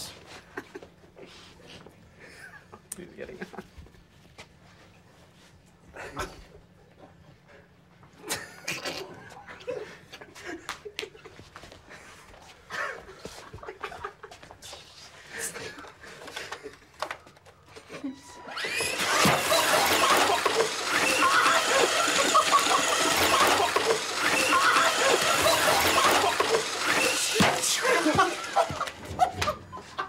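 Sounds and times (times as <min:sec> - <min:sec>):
men laughing loudly: 0:12.7 - 0:14.7, 0:18.6 - 0:30.0
men exclaiming: 0:18.6 - 0:29.4.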